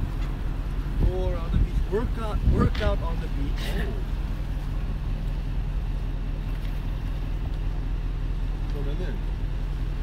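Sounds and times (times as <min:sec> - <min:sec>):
engine hum with rumble: 0:00.0 - 0:10.0.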